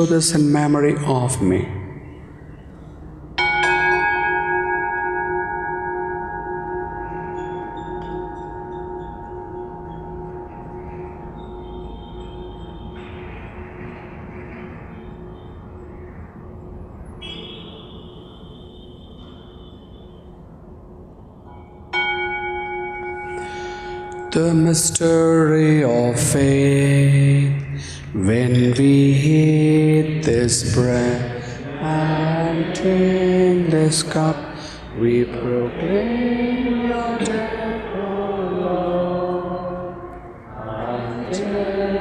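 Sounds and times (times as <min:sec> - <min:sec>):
bell ringing: 0:02.8 - 0:14.2, 0:21.5 - 0:27.0.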